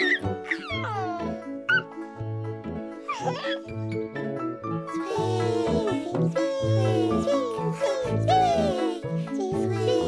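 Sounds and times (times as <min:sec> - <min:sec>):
baby laughing: 0:00.0 - 0:01.9, 0:03.0 - 0:03.7, 0:05.0 - 0:10.0
gentle children's music: 0:00.0 - 0:10.0.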